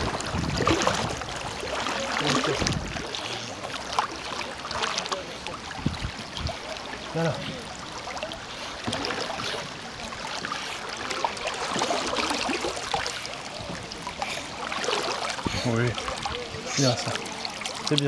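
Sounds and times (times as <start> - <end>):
dog swimming and splashing water: 0.0 - 18.0.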